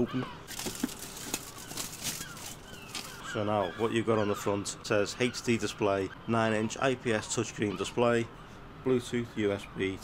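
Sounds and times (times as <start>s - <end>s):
plastic shrink-wrap crinkling and tearing: 0.5s - 3.2s.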